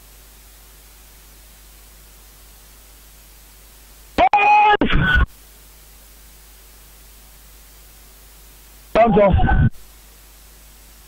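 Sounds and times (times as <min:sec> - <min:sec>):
steady radio hiss: 0:00.0 - 0:11.0
person speaking over radio: 0:04.2 - 0:05.3, 0:08.9 - 0:09.8.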